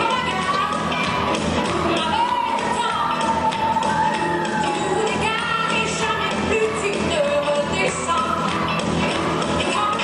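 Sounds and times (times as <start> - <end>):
rock and roll dance music: 0.0 - 10.0
shoes tapping on stage floor: 0.0 - 10.0.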